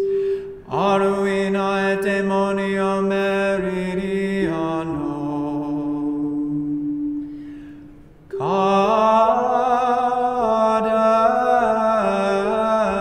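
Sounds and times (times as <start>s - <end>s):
unaccompanied chant singing: 0.7s - 6.9s, 8.3s - 13.0s.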